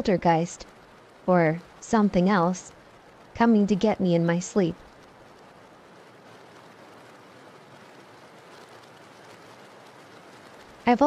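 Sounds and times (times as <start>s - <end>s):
steady rain hiss: 0.0s - 11.0s.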